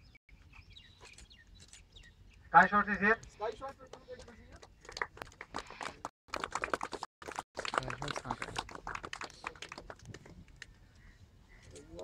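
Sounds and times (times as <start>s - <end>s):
small crowd clapping: 3.8s - 10.7s.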